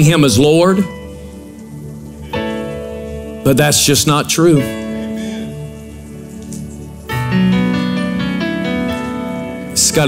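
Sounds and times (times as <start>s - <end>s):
soft keyboard music: 0.0s - 10.0s.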